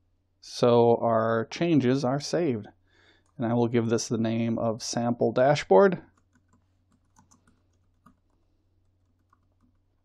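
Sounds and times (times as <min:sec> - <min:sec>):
computer keyboard typing: 0:06.1 - 0:10.0.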